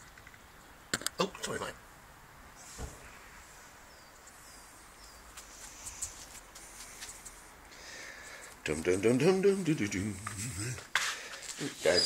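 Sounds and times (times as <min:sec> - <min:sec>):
garden background hiss: 0:00.0 - 0:12.0.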